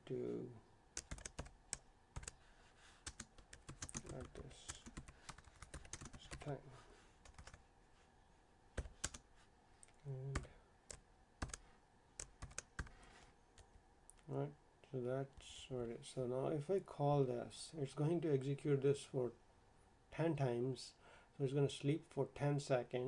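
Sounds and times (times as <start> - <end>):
typing on computer keyboard: 1.0 - 2.4, 3.0 - 6.4, 7.2 - 7.6, 8.8 - 9.2, 11.4 - 11.6, 12.2 - 12.9.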